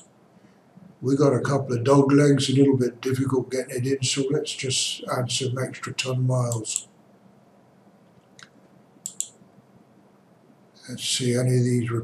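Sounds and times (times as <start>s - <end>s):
computer mouse clicking: 8.1s - 9.4s.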